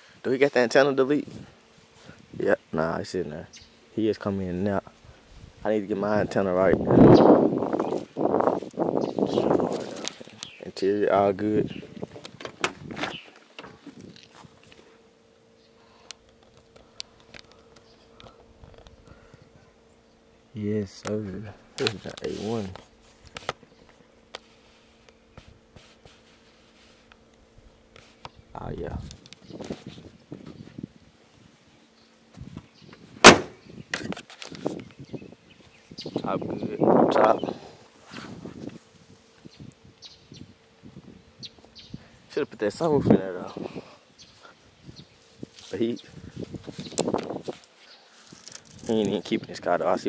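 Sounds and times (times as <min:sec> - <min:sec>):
low steady hum: 0:00.0 - 0:50.0
car door slamming: 0:33.2 - 0:33.6.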